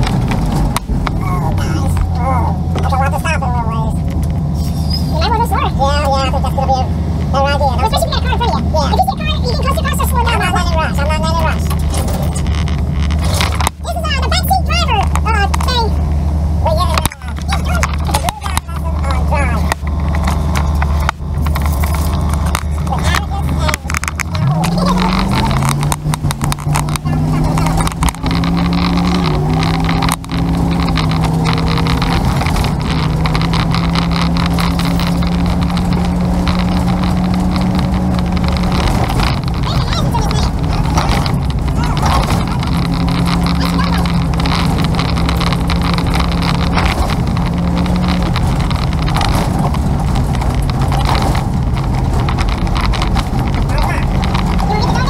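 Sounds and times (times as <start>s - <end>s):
vehicle engine: 0.0s - 55.0s
wind and road noise: 0.0s - 55.0s.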